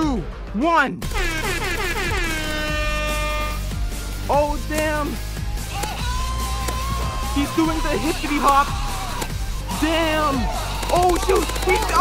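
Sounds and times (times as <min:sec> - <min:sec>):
air horn blasts: 0:01.0 - 0:03.8.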